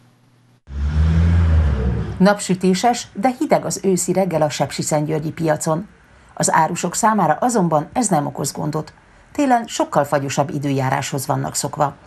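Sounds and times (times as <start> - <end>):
vehicle engine rumbling: 0.7 - 2.8
street noise: 0.7 - 3.2.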